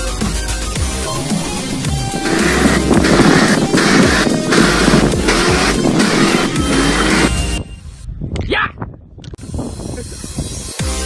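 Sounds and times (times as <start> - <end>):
electronic dance music: 0.8 - 7.4.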